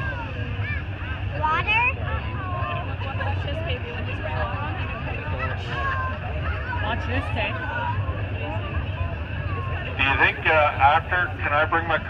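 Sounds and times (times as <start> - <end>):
crowd chatter: 0.0 - 12.0
low engine rumble: 0.0 - 12.0.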